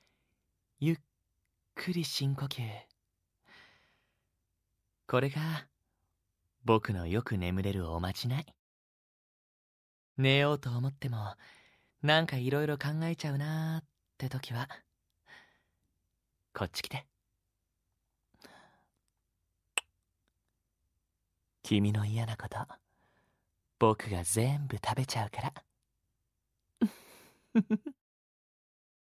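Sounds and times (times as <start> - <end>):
man breathing softly: 3.4 - 4.3, 11.4 - 12.0, 15.2 - 15.9, 18.3 - 19.0, 22.8 - 23.5.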